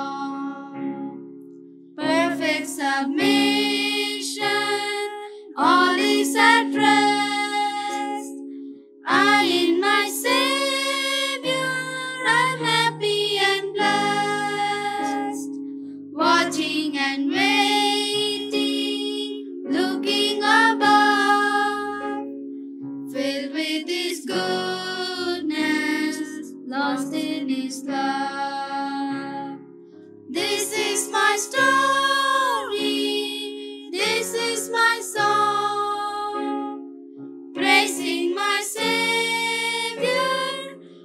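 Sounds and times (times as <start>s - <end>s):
girls singing in unison: 2.0s - 8.4s, 9.1s - 15.5s, 16.2s - 22.3s, 23.2s - 29.6s, 30.3s - 36.8s, 37.6s - 40.8s.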